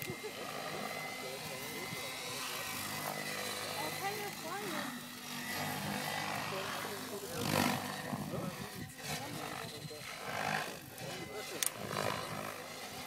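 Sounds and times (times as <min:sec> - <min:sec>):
model helicopter motor whine: 0:00.0 - 0:13.0
rotor blades whoosh: 0:00.0 - 0:13.0.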